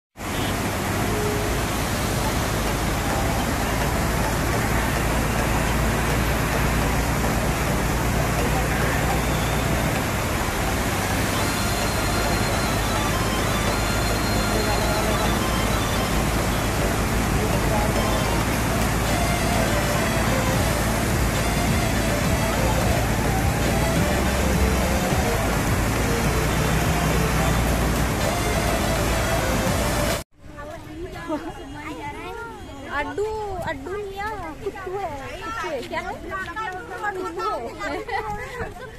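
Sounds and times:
water rushing over waterfall: 0.2s - 30.2s
crowd voices: 0.4s - 38.9s.

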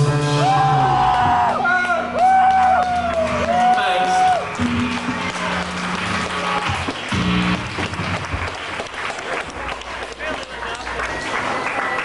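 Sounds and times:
band holding low notes: 0.0s - 9.8s
audience clapping: 1.0s - 12.0s
audience chattering: 4.5s - 12.0s.

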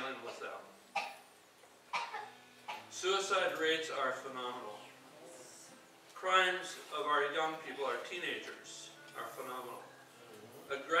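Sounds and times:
person coughing: 1.9s - 2.9s.

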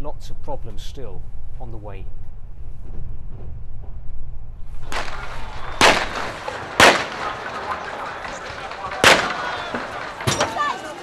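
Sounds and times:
loud sharp explosions: 4.8s - 10.4s
crowd shouting: 4.8s - 11.0s.

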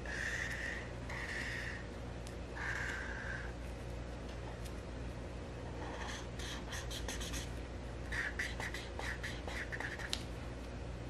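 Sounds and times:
marker scratching on paper: 5.9s - 7.5s, 8.1s - 10.2s.

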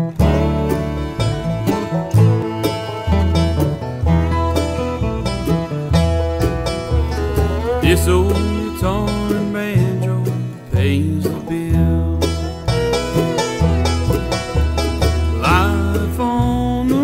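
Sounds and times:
banjo rolls: 0.0s - 17.0s
strummed acoustic guitars: 0.0s - 17.0s
upright bass line: 0.0s - 17.0s.

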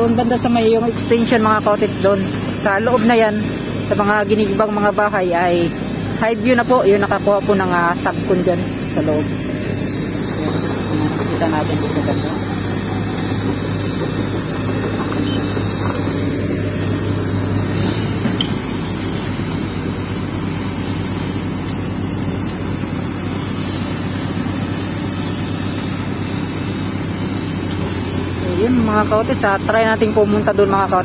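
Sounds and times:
heavy machinery engine drone: 0.0s - 31.0s.

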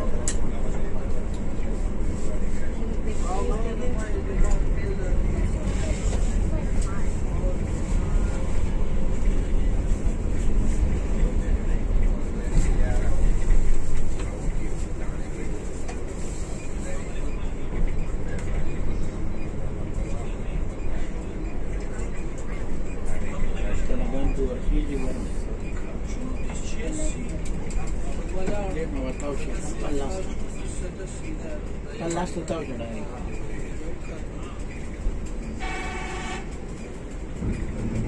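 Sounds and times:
coach engine and road rumble: 0.0s - 38.0s.

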